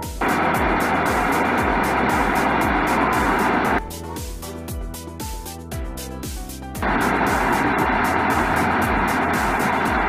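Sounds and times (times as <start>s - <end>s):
loud rushing hiss: 0.0s - 3.8s, 6.8s - 10.0s
music with steady beat: 0.0s - 10.0s.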